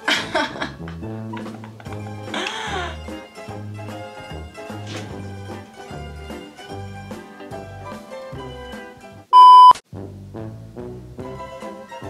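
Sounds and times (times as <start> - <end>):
upbeat background music: 0.0 - 12.0
high censor beep: 9.4 - 9.8.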